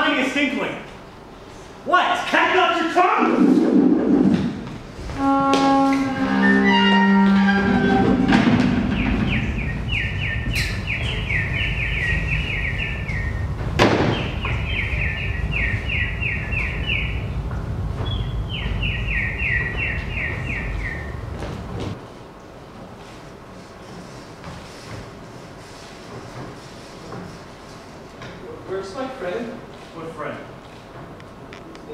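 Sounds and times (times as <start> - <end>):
rapid falling bird-like chirps: 8.9 - 17.4, 18.0 - 21.2
sharp crack: 13.8 - 14.4.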